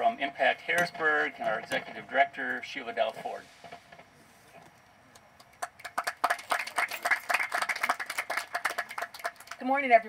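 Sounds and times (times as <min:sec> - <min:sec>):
audience applauding: 0:05.4 - 0:09.6.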